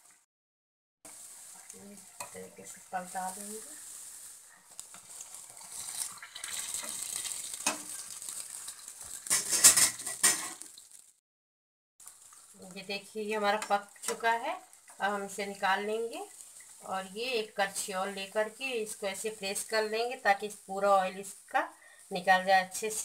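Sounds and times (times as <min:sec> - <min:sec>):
batter sizzling in hot oil: 0:01.1 - 0:11.2, 0:12.0 - 0:23.0
metal spoon scraping a pan: 0:02.2 - 0:10.7.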